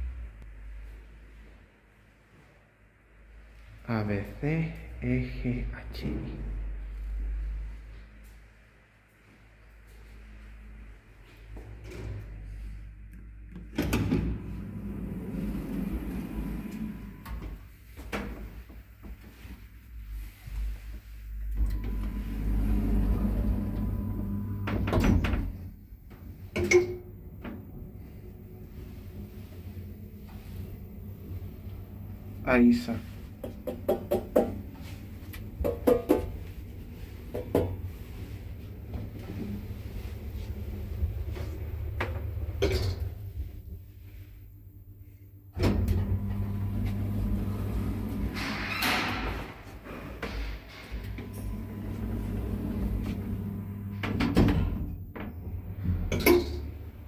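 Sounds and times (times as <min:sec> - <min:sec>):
lift door motor running: 0:13.5 - 0:17.4, 0:21.6 - 0:33.7, 0:36.3 - 0:44.2, 0:45.6 - 0:57.0
lift doors rattling and knocking: 0:33.3 - 0:34.8, 0:45.6 - 0:57.0.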